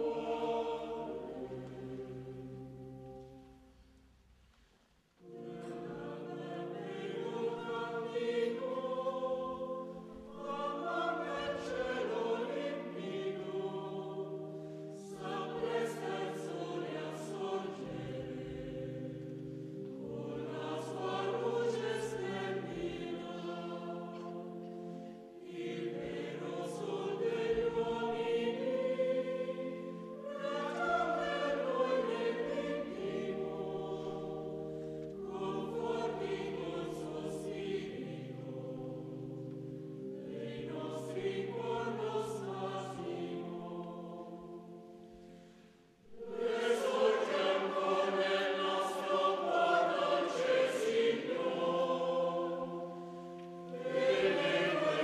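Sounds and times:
mixed choir singing: 0:00.0 - 0:03.5, 0:05.2 - 0:55.0.

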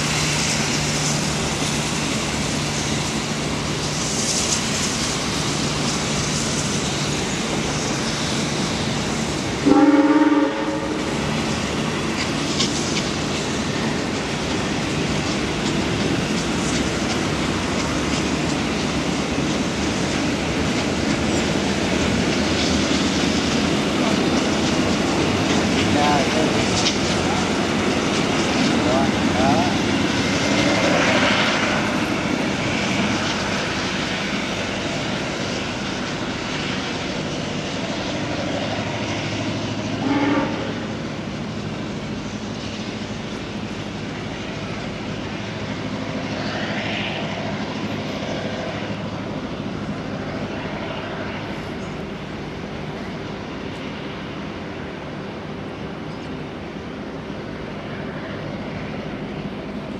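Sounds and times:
train running: 0:00.0 - 0:59.9.

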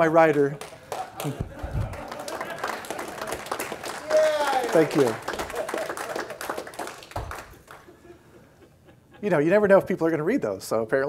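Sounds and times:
audience clapping: 0:00.0 - 0:08.0.

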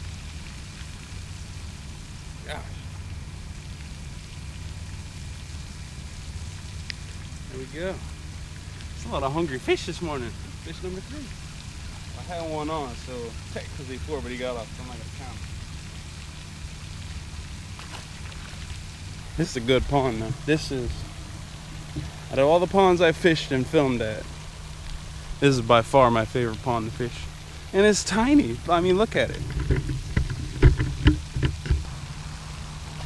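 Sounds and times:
hiss of falling water: 0:00.0 - 0:33.0
low rumble: 0:00.0 - 0:33.0.

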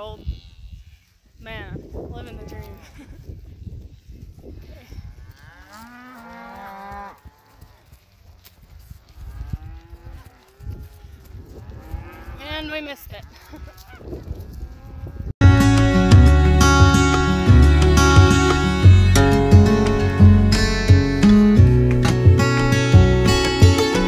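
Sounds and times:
cattle mooing: 0:05.3 - 0:07.6
loud guitar music: 0:15.4 - 0:24.0.

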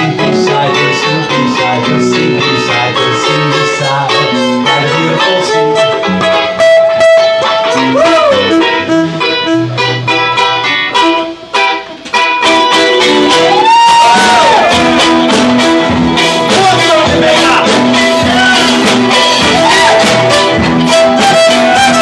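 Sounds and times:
reggae band playing: 0:00.0 - 0:22.0.

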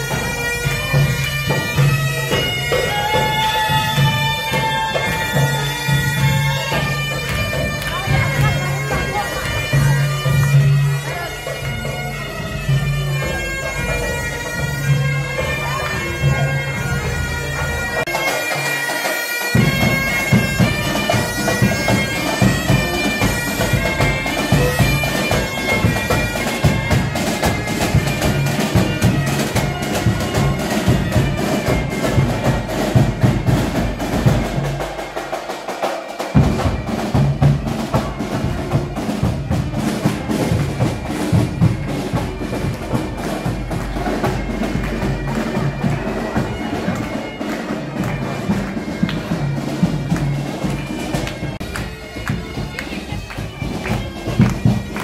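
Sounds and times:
bagpipes playing: 0:00.0 - 0:55.0
drum beating: 0:00.0 - 0:55.0.

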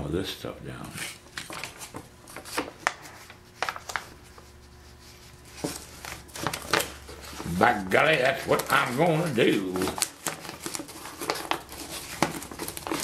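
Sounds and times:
paper rustling and crinkling: 0:01.4 - 0:13.0.

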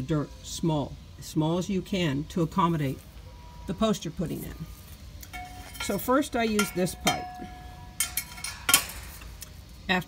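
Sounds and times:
metal pipe clinking and knocking: 0:05.2 - 0:09.5.

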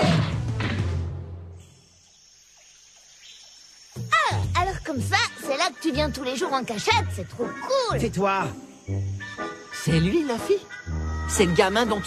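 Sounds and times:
crickets chirping: 0:00.8 - 0:12.0.

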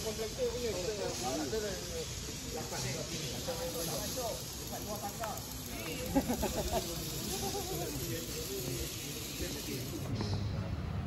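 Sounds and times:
steady hiss: 0:00.0 - 0:10.5
faint distant voices: 0:00.0 - 0:11.0.

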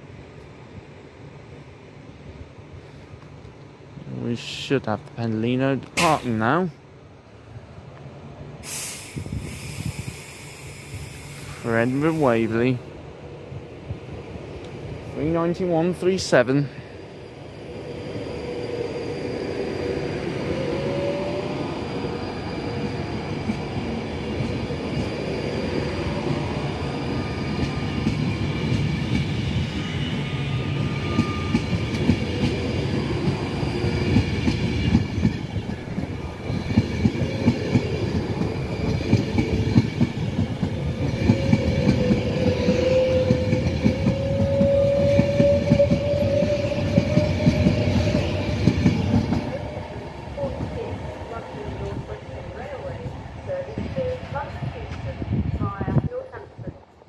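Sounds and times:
electric train accelerating past: 0:05.8 - 0:57.0
train wheels clicking over rail joints: 0:30.8 - 0:49.8.

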